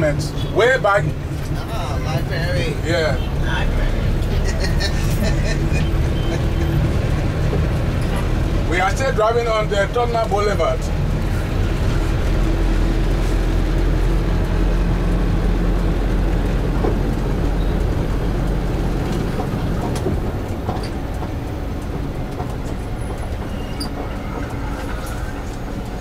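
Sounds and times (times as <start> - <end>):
engine and road noise inside vehicle: 0.0 - 26.0.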